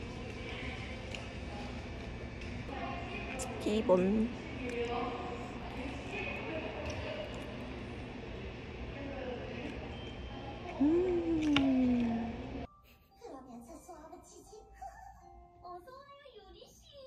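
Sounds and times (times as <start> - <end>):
woman humming with enjoyment: 10.8 - 12.7.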